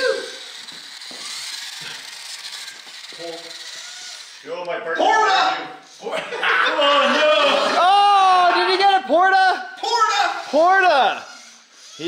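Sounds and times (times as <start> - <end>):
small electric motor whirring: 0.0 - 7.8, 9.8 - 12.0.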